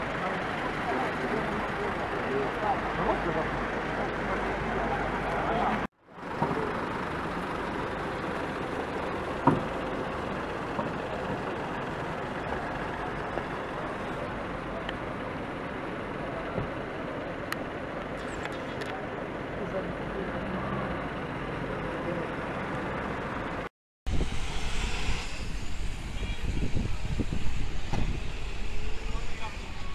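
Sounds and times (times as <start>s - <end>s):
faint voices: 0.0s - 6.9s
vehicle engines running: 0.0s - 23.7s, 25.5s - 29.9s.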